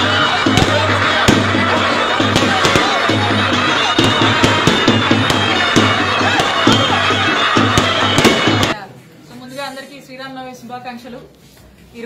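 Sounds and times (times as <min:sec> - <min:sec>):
drums beating: 0:00.0 - 0:08.8
shrill droning wind instrument: 0:00.0 - 0:08.8
crowd: 0:00.0 - 0:12.0.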